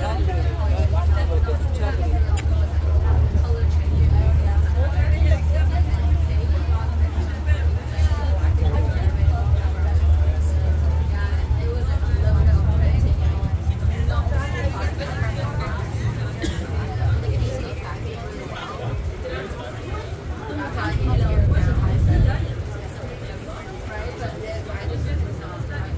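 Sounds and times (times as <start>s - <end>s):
low engine rumble: 0.0s - 25.9s
passengers chattering: 0.0s - 25.9s.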